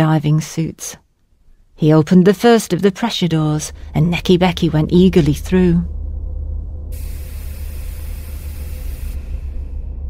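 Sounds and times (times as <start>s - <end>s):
low underwater rumble: 3.6s - 10.0s
rushing hiss of door: 7.0s - 9.8s.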